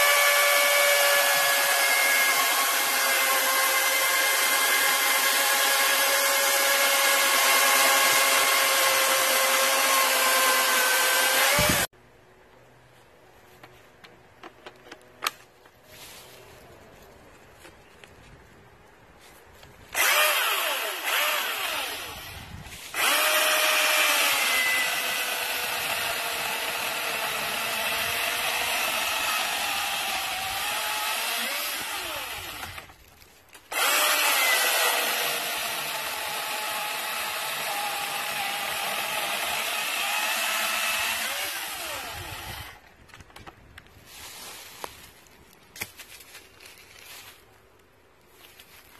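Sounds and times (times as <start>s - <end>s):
cordless chainsaw cutting log: 0.0s - 11.9s, 19.9s - 33.0s, 33.7s - 42.8s.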